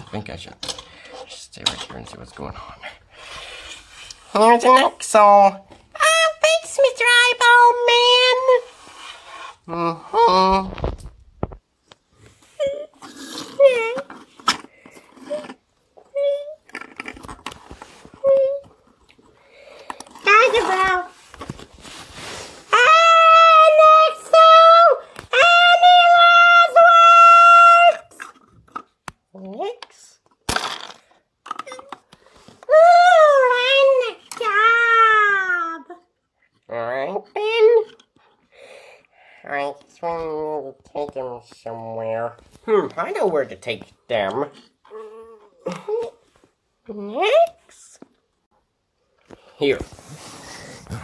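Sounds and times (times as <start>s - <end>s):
child making sound effects: 6.0s - 8.7s, 12.6s - 14.1s, 15.3s - 16.7s, 18.2s - 18.8s, 20.2s - 21.2s, 22.7s - 28.2s, 32.7s - 36.1s.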